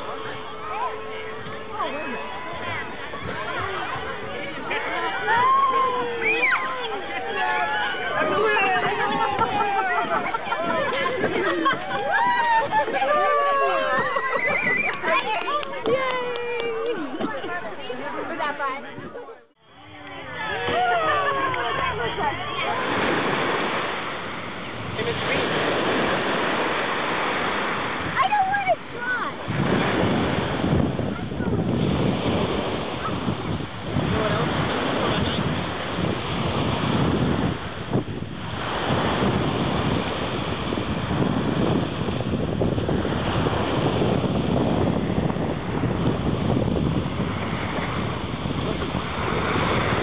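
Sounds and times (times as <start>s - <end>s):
small waves washing onto shore: 0.0s - 50.0s
wind buffeting microphone: 0.0s - 50.0s.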